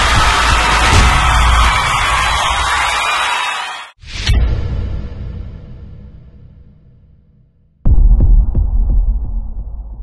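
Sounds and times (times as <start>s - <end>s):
deep cinematic boom: 7.9s - 10.0s.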